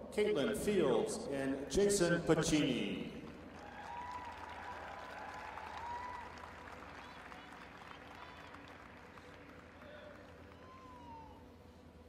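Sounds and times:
audience applauding: 3.3s - 11.4s.

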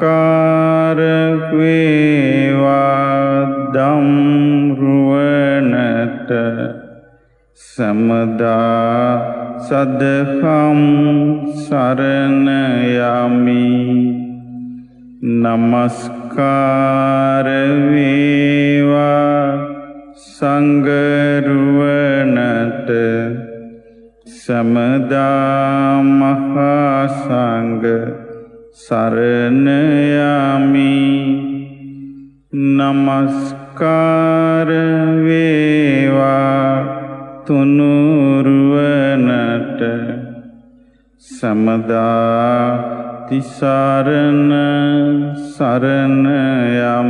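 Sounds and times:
devotional chant with held notes: 0.0s - 47.0s.

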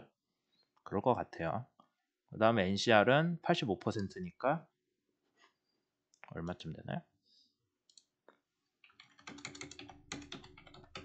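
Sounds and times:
keyboard keys typing: 8.8s - 11.0s.

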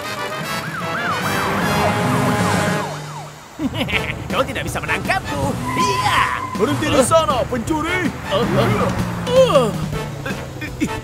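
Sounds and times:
background music: 0.0s - 11.0s
cartoon police siren: 0.4s - 3.4s.

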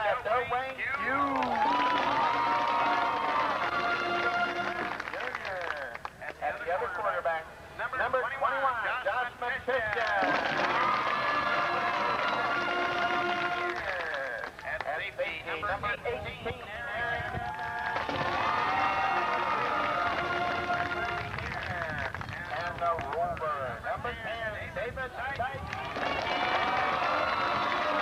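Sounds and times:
crowd cheering and yelling: 1.0s - 5.2s, 10.1s - 13.9s, 17.1s - 21.4s, 25.6s - 28.0s.

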